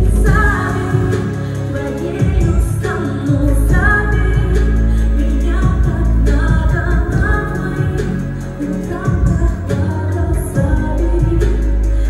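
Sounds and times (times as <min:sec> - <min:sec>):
heavy bass accompaniment: 0:00.0 - 0:12.0
woman singing pop song: 0:00.0 - 0:12.0.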